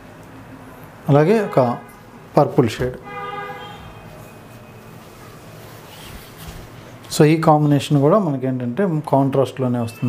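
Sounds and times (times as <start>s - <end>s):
horn-like chord tone: 3.0s - 4.8s.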